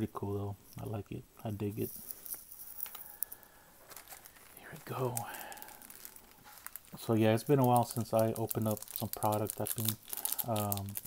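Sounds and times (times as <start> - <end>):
plastic wrappers rustling: 1.7 - 11.0.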